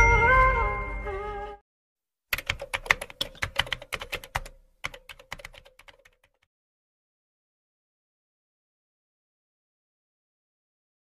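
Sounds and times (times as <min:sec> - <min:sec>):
rapid keyboard key clicks: 0:02.3 - 0:06.5.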